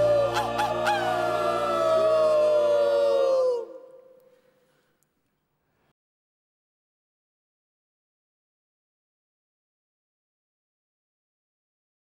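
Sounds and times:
man and choir singing: 0:00.0 - 0:03.9.

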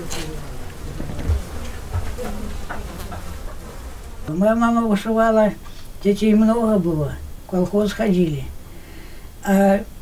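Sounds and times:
insect buzzing: 0:00.0 - 0:06.1.

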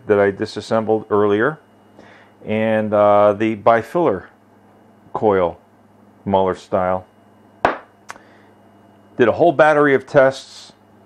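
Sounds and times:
sharp knock: 0:07.6 - 0:07.9.

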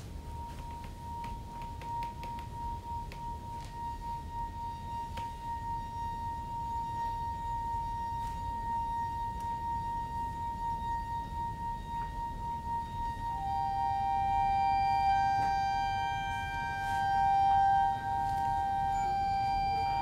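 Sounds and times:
long pure held note: 0:00.0 - 0:20.0
fainter higher note: 0:02.6 - 0:20.0.

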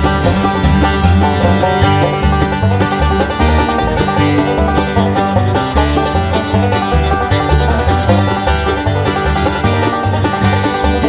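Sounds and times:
acoustic guitar picking: 0:00.0 - 0:11.0
banjo: 0:00.0 - 0:11.0
mandolin: 0:00.0 - 0:11.0
pulsing bass line: 0:00.0 - 0:11.0.

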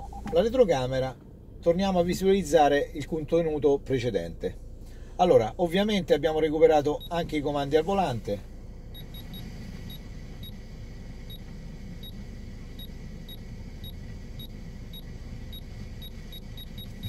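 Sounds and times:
low steady rumble: 0:00.0 - 0:17.0.

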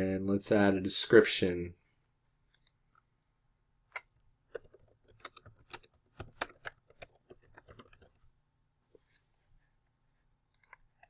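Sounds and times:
typing on computer keyboard: 0:04.5 - 0:08.3, 0:10.5 - 0:10.8.

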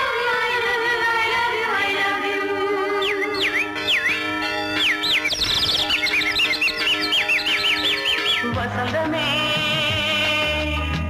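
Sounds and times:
held chord: 0:02.6 - 0:08.8
high chirping glides: 0:02.9 - 0:08.6.

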